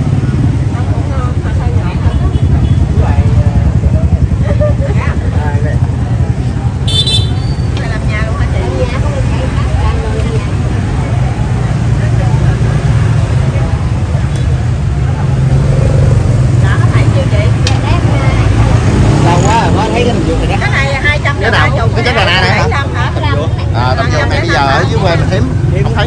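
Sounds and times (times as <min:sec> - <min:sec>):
street traffic rumble: 0:00.0 - 0:26.0
voices chattering: 0:00.0 - 0:26.0.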